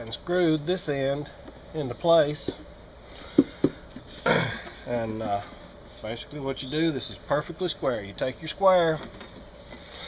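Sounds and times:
taps on wooden box: 3.4s - 3.8s
man clearing throat: 4.2s - 4.8s.

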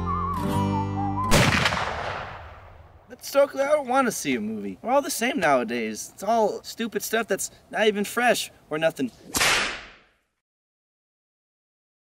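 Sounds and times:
sharp crack hit effect: 1.3s - 3.0s, 9.3s - 10.1s.

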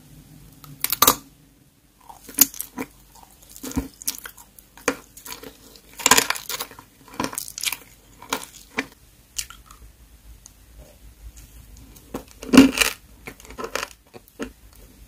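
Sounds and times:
crunchy candy chewing: 2.0s - 9.8s, 11.8s - 14.6s.

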